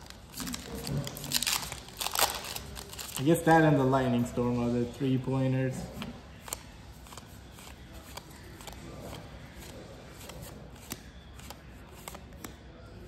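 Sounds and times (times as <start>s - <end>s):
cards rustling: 0.0s - 4.6s, 5.3s - 12.6s.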